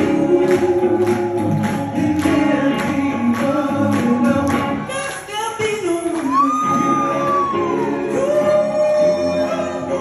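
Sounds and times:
male falsetto singing: 5.0 - 10.0.

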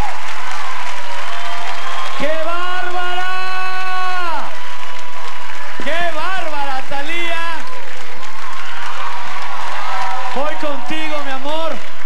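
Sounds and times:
audience applauding and cheering: 0.0 - 12.0.

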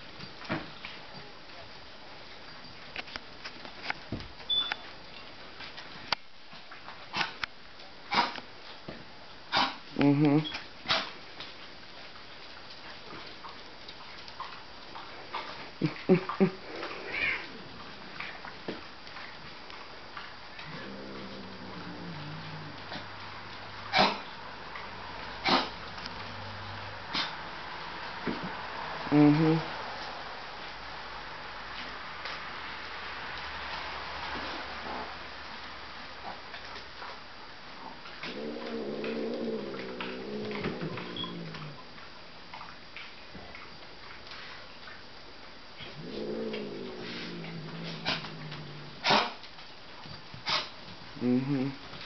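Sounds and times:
woman murmuring: 10.0 - 10.5, 29.1 - 29.7, 51.2 - 51.8
faint pet vocal sounds: 14.4 - 18.6, 20.2 - 24.3, 37.8 - 42.0, 45.8 - 49.4, 50.4 - 52.0
dog whining: 38.6 - 41.8.

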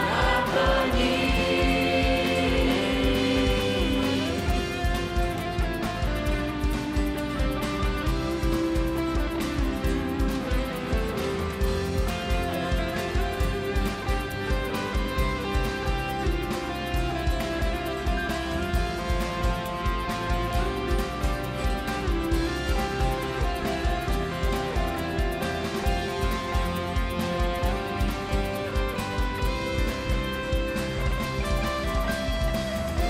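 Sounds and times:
church band playing: 0.0 - 6.4.

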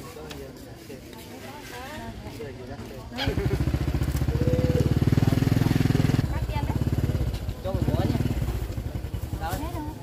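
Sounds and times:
small motorbike engine running: 3.2 - 10.0.

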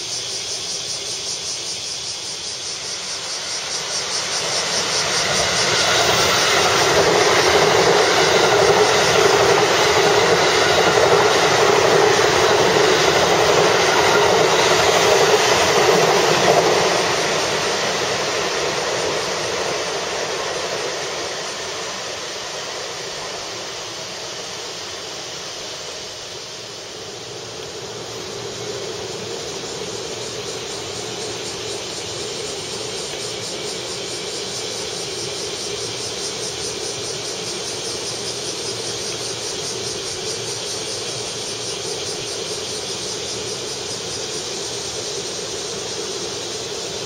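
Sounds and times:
train passing at speed: 0.0 - 47.0.

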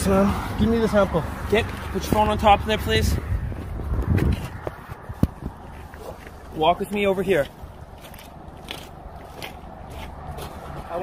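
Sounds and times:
phone microphone handling rumble: 3.3 - 6.0.

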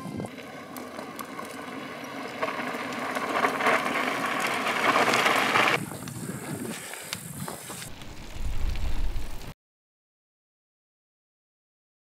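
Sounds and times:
wind rumble on microphone: 0.0 - 0.4, 4.8 - 9.5
mountain bike on dirt track: 0.0 - 9.6
bike rattles and knocks: 0.8 - 6.2.

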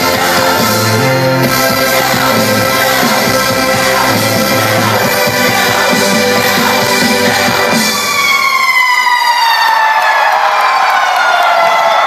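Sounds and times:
synthesizer note gliding downward: 0.0 - 9.6
crowd cheering: 0.0 - 12.0.

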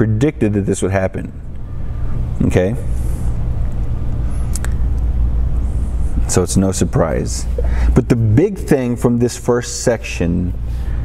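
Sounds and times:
low room rumble and hum: 0.0 - 11.0.

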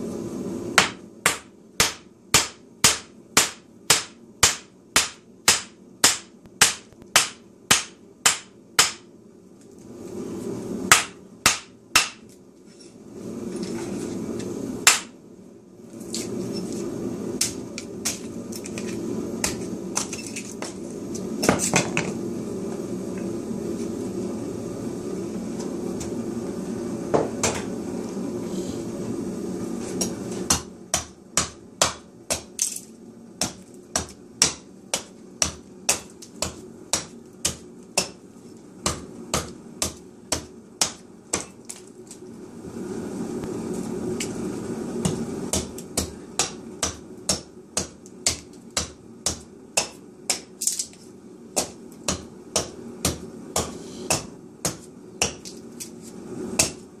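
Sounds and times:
steady low hum: 0.0 - 57.0
mallet striking hatchet into wood: 0.8 - 9.0, 10.9 - 12.2, 14.8 - 15.1, 30.5 - 32.5, 33.4 - 38.2, 38.8 - 41.6, 45.0 - 50.5, 51.6 - 55.5, 56.6 - 56.8.

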